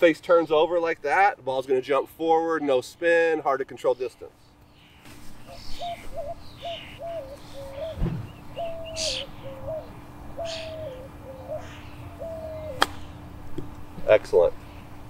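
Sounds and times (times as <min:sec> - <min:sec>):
faint steady hum: 0:00.0 - 0:15.0
bird whistling calls: 0:05.5 - 0:13.2
golf club striking ball: 0:12.8 - 0:13.8.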